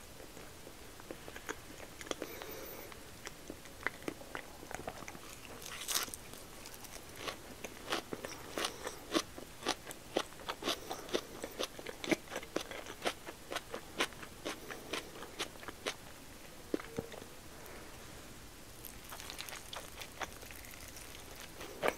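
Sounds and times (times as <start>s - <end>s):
close chewing with mouth clicks: 0.4s - 17.3s, 18.8s - 21.9s.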